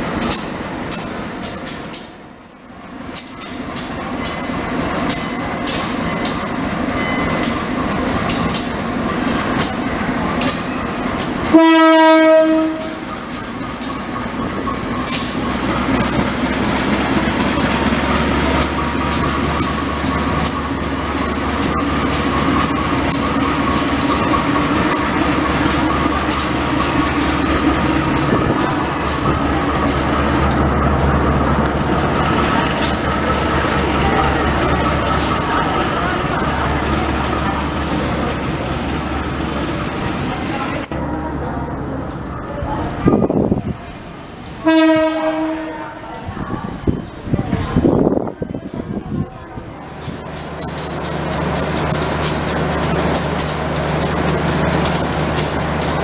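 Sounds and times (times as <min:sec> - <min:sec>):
wheels clicking on track: 0:00.0 - 0:44.6, 0:46.1 - 0:56.0
locomotive engine rumbling: 0:00.0 - 0:56.0
locomotive horn blast: 0:11.5 - 0:13.1, 0:44.6 - 0:46.0.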